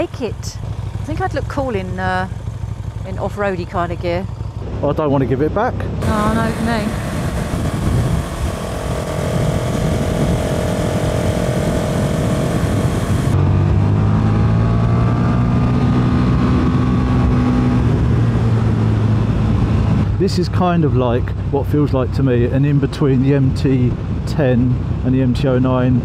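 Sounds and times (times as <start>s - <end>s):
motorcycle engine cruising: 0.0s - 21.5s
wind noise: 6.0s - 20.3s.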